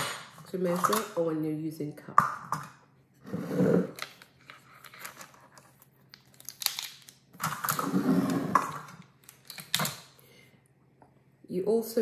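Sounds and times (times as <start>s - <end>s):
bowl scraping on tabletop: 3.2s - 4.0s, 7.8s - 8.8s
plastic spoons clicking: 8.7s - 10.1s.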